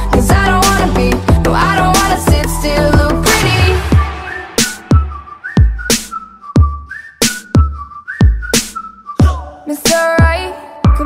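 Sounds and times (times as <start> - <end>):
whistled melody: 1.6 - 10.3.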